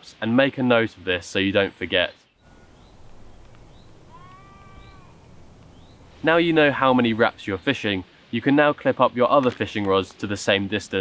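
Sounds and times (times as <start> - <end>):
faint drawn-out animal call: 2.4 - 5.6.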